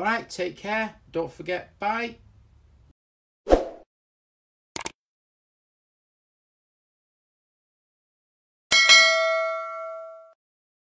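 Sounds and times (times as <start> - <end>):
notification bell ding: 8.7 - 10.4.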